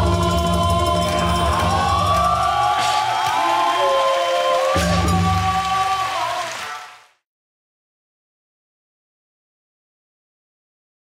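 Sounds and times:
drums: 0.0 - 6.8.

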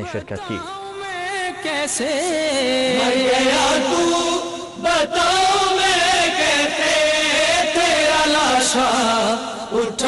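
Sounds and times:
man chanting a lament: 0.0 - 10.0.

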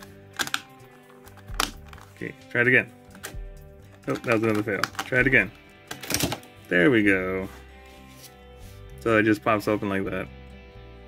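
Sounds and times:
quiet background music: 0.0 - 11.0
plastic toy shell clicking shut: 0.3 - 2.0.

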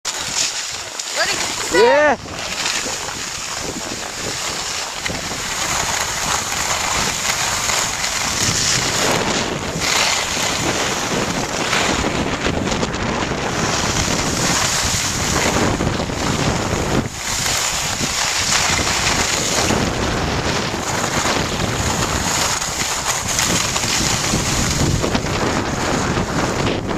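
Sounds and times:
skis scraping over snow: 0.1 - 26.9
wind rushing over microphone: 0.1 - 26.9.

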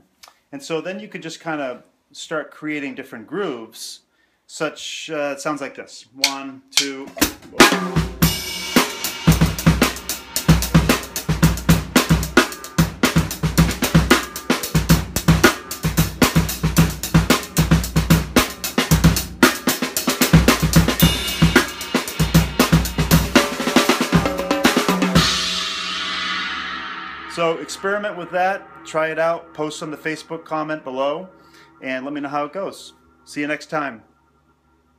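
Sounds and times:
drum kit fast groove: 6.2 - 30.6
cymbals ringing: 7.7 - 12.8, 19.3 - 33.3.

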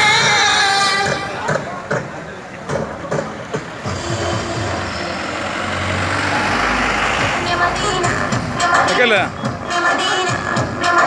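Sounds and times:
people talking: 0.2 - 5.3, 7.4 - 9.6
large vehicle engine running: 1.5 - 10.8.

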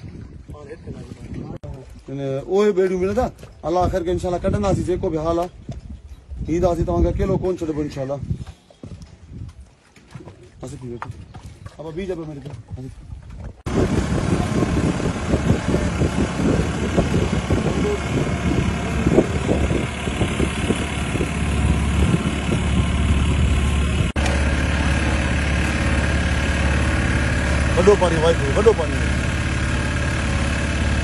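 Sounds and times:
boat engine droning: 13.7 - 31.0.

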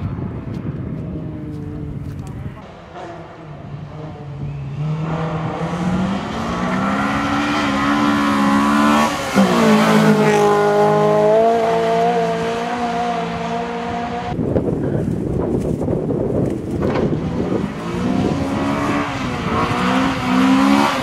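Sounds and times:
car engine accelerating hard: 2.7 - 14.4, 16.8 - 21.0.

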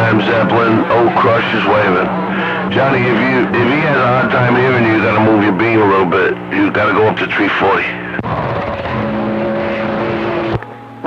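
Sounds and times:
radio static hiss: 0.0 - 8.3
steady radio tones: 0.0 - 11.0.

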